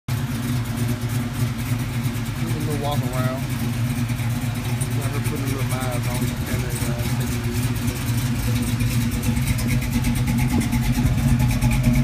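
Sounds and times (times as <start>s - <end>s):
car engine idling: 0.1s - 12.0s.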